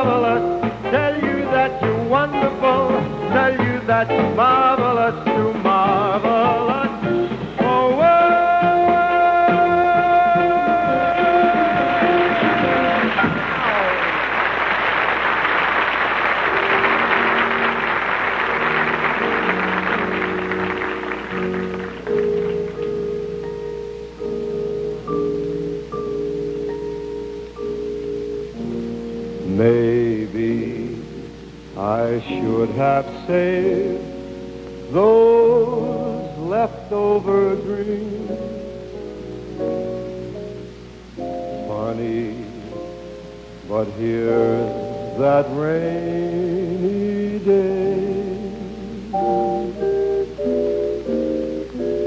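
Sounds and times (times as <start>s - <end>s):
man crooning a slow ballad: 0.0s - 13.0s, 22.0s - 40.3s, 41.2s - 52.0s
double bass: 0.0s - 13.6s, 18.7s - 52.0s
drums: 0.0s - 14.0s
band playing soft chords: 0.0s - 52.0s.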